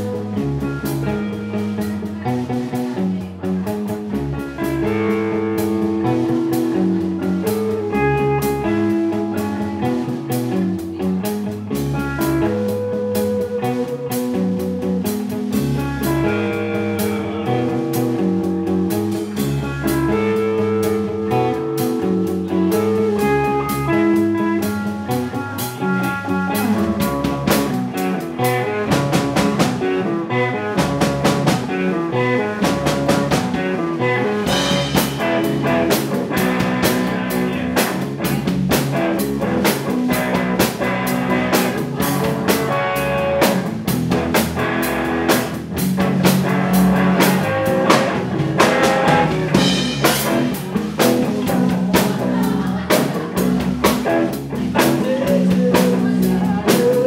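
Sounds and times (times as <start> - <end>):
bass guitar: 0.0 - 57.0
drum kit: 0.0 - 57.0
electric guitars: 0.0 - 57.0.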